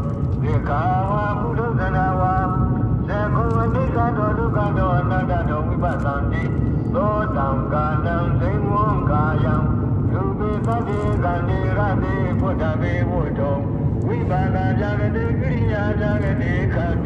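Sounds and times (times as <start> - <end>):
car engine and road rumble: 0.0 - 17.0
voice chanting through car speakers: 0.0 - 17.0.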